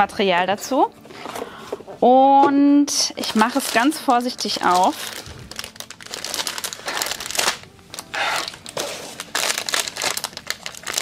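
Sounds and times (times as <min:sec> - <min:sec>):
plastic packaging crinkling: 0:03.2 - 0:11.0.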